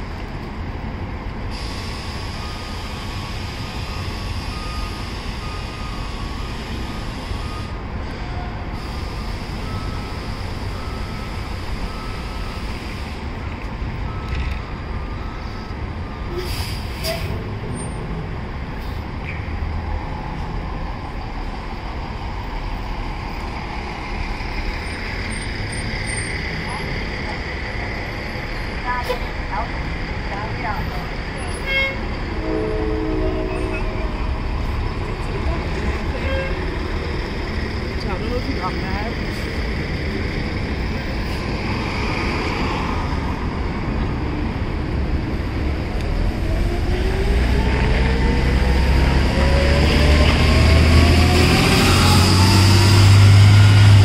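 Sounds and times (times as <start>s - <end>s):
bus engine pulling away: 0.0s - 54.0s
city traffic noise: 0.0s - 54.0s
bus horn toot: 31.4s - 34.2s, 36.1s - 36.7s.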